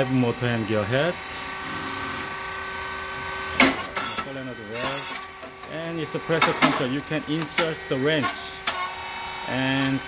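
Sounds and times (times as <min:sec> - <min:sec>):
machine motor and pump humming: 0:00.0 - 0:10.0.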